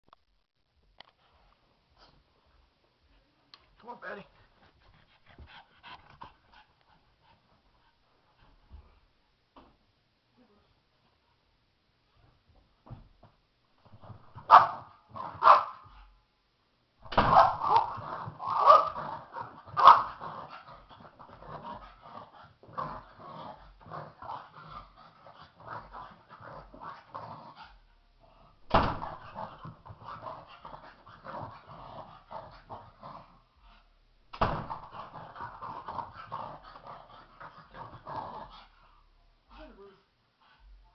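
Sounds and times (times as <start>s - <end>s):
dog breathing in quick puffs: 4.4s - 8.0s
dog barking and growling: 14.0s - 16.0s, 17.1s - 33.8s, 34.4s - 38.8s.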